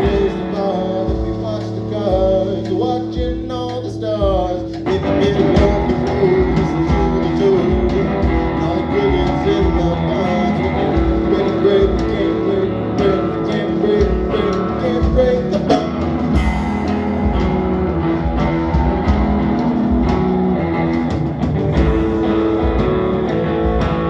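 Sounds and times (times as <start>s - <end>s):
drum kit: 0.0s - 24.0s
electric guitar: 0.0s - 24.0s.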